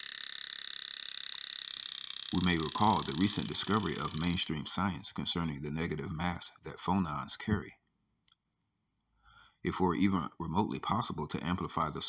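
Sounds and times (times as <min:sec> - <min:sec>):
high pulsing engine buzz: 0:00.0 - 0:05.4.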